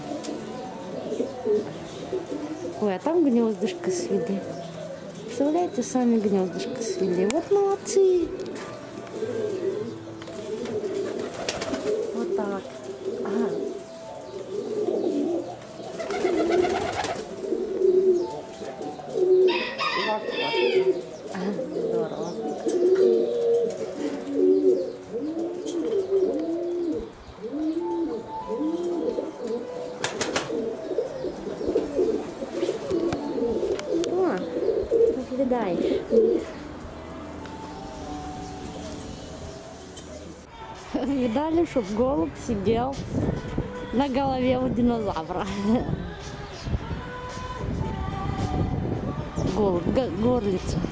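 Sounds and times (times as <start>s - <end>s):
pigeons cooing: 0.0s - 40.5s.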